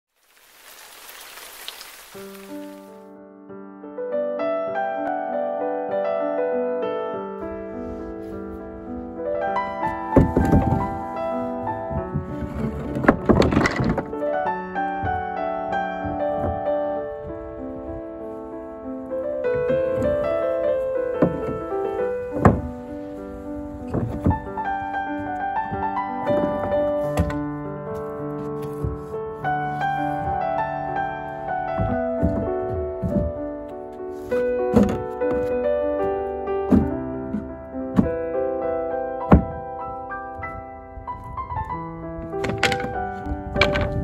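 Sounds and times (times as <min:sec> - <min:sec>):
rain falling on trees and grass: 0:00.1 - 0:02.9
piano music: 0:02.1 - 0:44.0
wooden board thunking down: 0:09.9 - 0:14.2, 0:19.5 - 0:31.1, 0:31.7 - 0:33.4, 0:34.2 - 0:35.6, 0:36.6 - 0:38.3, 0:39.3 - 0:39.6, 0:42.2 - 0:44.0.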